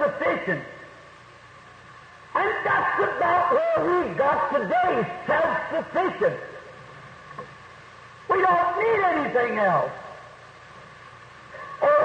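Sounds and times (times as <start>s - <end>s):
man preaching: 0.0s - 0.8s, 2.3s - 6.7s, 8.3s - 10.2s
faint steady background hiss: 0.0s - 12.0s.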